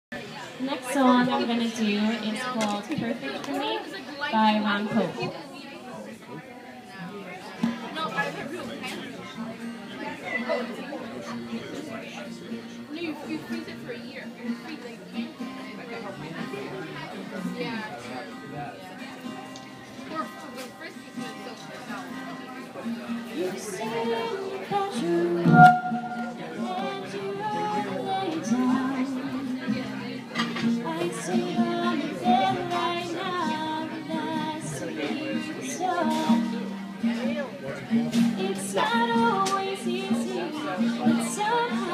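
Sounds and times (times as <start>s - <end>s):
people chattering: 0.1s - 41.9s
soft acoustic guitar: 0.1s - 41.9s
woman singing: 23.6s - 25.7s, 26.3s - 30.0s, 30.8s - 36.7s, 38.4s - 41.9s.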